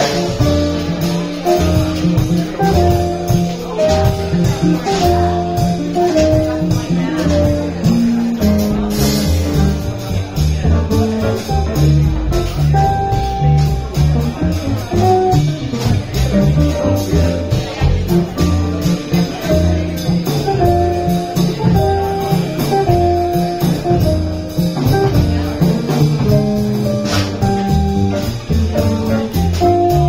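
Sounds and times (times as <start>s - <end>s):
drums and cymbals: 0.0s - 30.0s
keyboard melody: 0.0s - 30.0s
upright bass plucking: 0.0s - 30.0s.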